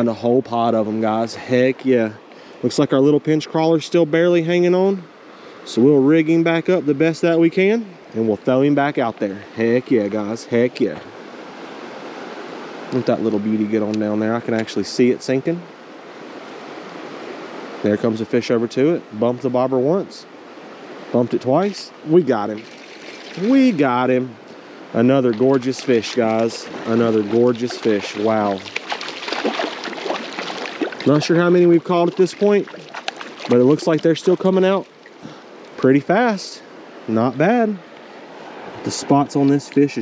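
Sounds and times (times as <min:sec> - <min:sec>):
creek water rushing: 0:00.0 - 0:40.0
fish thrashing water splashes: 0:22.6 - 0:23.8, 0:25.3 - 0:35.2.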